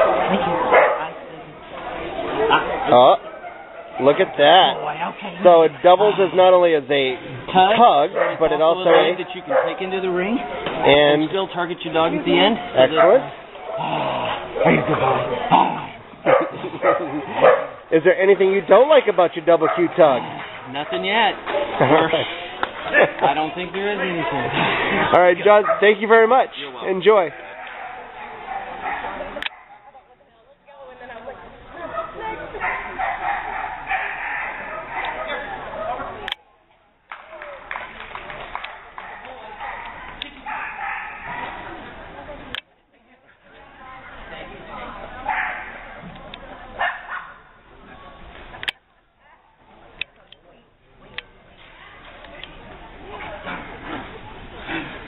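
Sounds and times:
dog play barking: 0:00.0 - 0:01.1, 0:08.1 - 0:09.8, 0:15.6 - 0:17.8, 0:27.4 - 0:29.8, 0:32.6 - 0:35.6, 0:38.7 - 0:41.6
voices echoing in a hall: 0:00.0 - 0:55.0.

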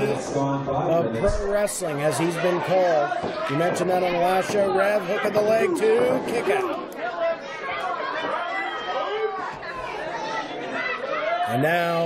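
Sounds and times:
audience chattering: 0:00.0 - 0:12.0.

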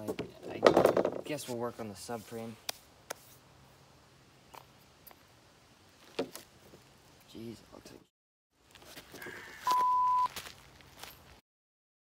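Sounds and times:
metal parts clattering on wood: 0:00.4 - 0:01.3
flat bleep tone: 0:09.7 - 0:10.3.

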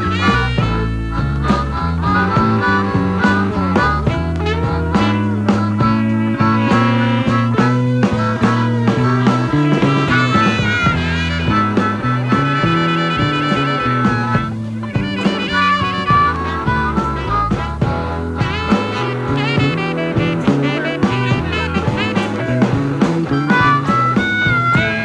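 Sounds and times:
drums: 0:00.0 - 0:25.0
electric guitar: 0:00.0 - 0:25.0
harmonica: 0:00.0 - 0:25.0
walking bass line: 0:00.0 - 0:25.0.

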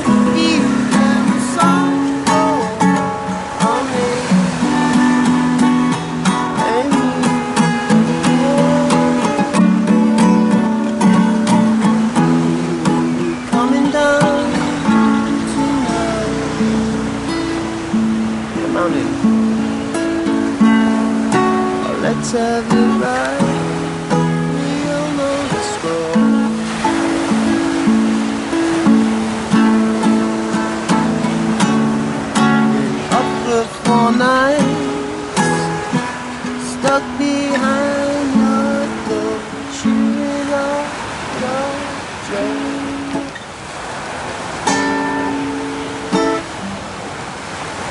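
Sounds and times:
acoustic guitar: 0:00.0 - 0:47.9.

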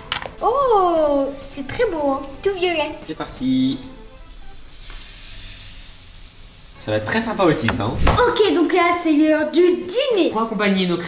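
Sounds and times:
batter sizzling in a pan: 0:03.6 - 0:07.7.

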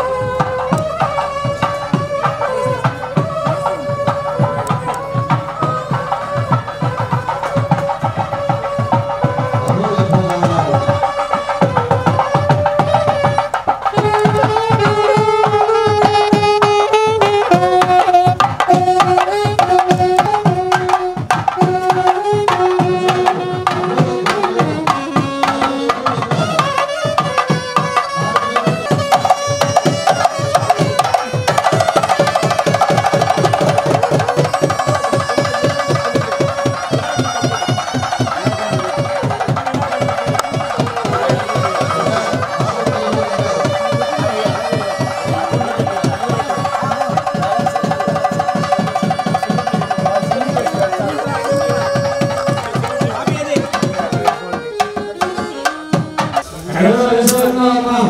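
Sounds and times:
rapid hand-drumming: 0:00.0 - 0:58.0
wavering wind-instrument melody: 0:00.0 - 0:58.0
person speaking: 0:14.0 - 0:16.3, 0:56.4 - 0:58.0.

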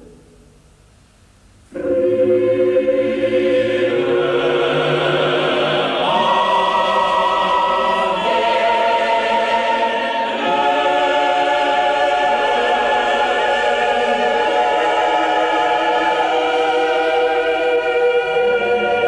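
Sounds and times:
choir singing sustained chords: 0:01.7 - 0:19.0.

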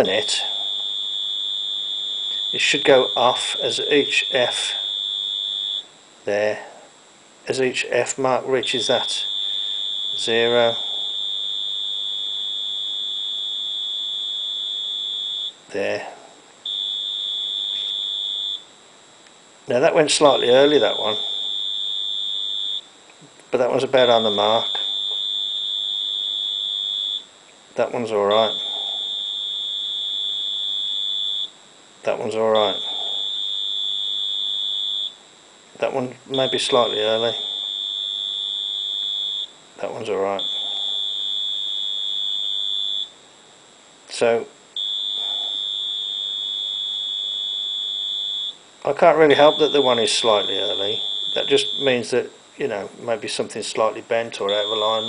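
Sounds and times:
high-pitched signal tone: 0:00.0 - 0:05.9, 0:08.6 - 0:15.6, 0:16.7 - 0:18.7, 0:20.3 - 0:22.9, 0:24.0 - 0:27.3, 0:28.2 - 0:31.6, 0:32.5 - 0:35.2, 0:36.3 - 0:43.2, 0:44.8 - 0:52.1, 0:54.4 - 0:55.0.

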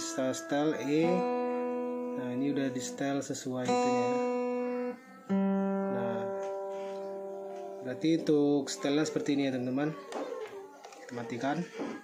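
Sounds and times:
guitar string plucked: 0:00.0 - 0:08.3
guitar string ringing: 0:00.0 - 0:08.6.

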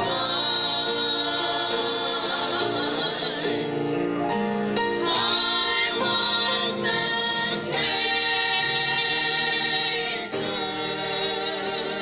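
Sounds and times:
gospel group singing in harmony: 0:00.0 - 0:12.0.

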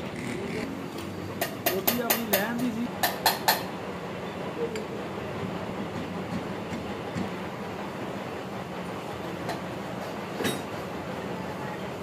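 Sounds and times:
constant hum: 0:00.0 - 0:12.0
low mechanical rumble: 0:00.0 - 0:12.0.

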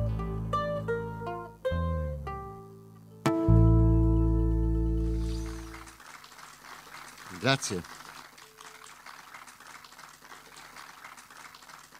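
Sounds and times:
faint audience clapping: 0:05.0 - 0:11.9.

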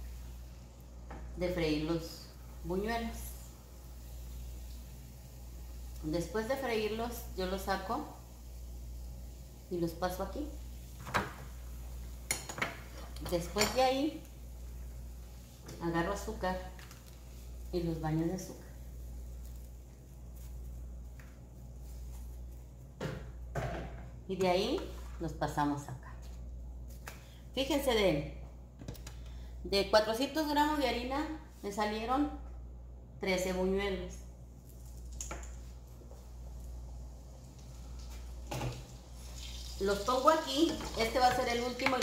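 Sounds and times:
hot oil in a frying pan: 0:00.0 - 0:01.4, 0:02.0 - 0:21.2, 0:34.7 - 0:41.8
gas burner hissing: 0:00.0 - 0:20.4
steady low hum: 0:00.0 - 0:39.4.

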